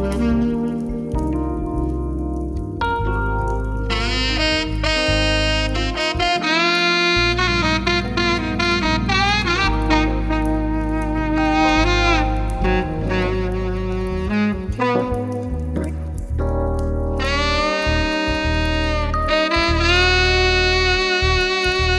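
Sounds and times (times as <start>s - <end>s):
bass line: 0.0s - 21.9s
saxophone melody: 0.0s - 21.9s.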